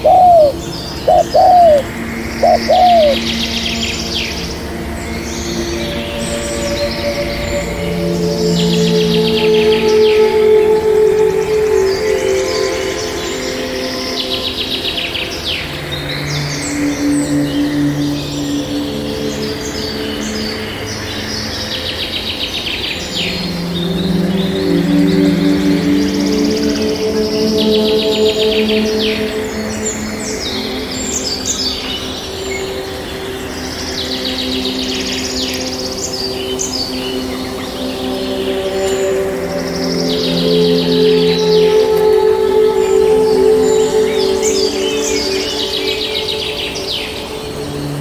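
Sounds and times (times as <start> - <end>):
birds chirping trills: 0.0 - 48.0
calm music with held notes: 0.0 - 48.0.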